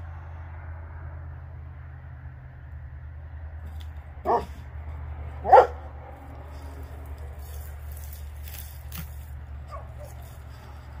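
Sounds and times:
dog barking: 0:04.2 - 0:04.6, 0:05.4 - 0:05.9.

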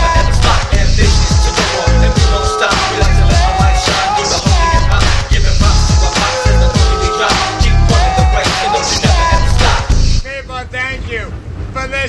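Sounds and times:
person singing drawn-out phrase: 0:00.0 - 0:09.9
hip hop beat: 0:00.0 - 0:10.2.

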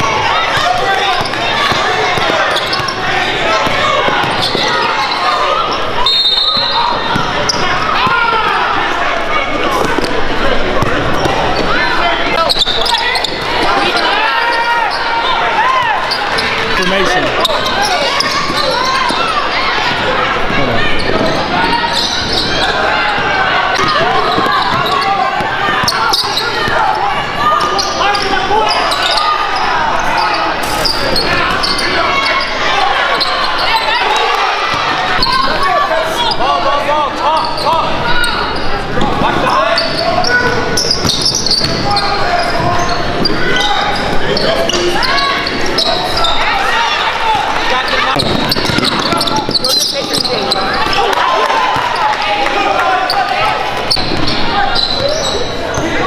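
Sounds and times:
voices calling out: 0:00.0 - 0:56.0.

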